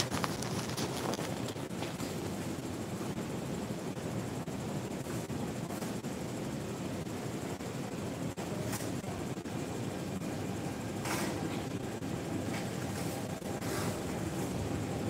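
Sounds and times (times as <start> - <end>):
metro platform rumble and hiss: 0.0 - 15.0.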